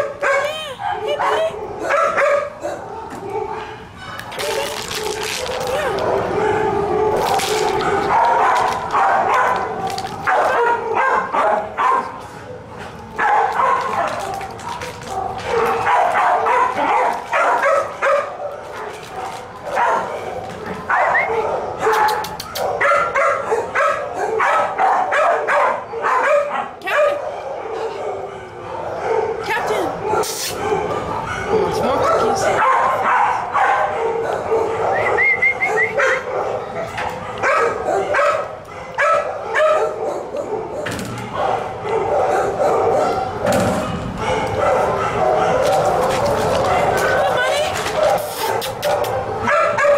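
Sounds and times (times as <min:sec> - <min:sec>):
many dogs barking and yipping: 0:00.0 - 0:49.9.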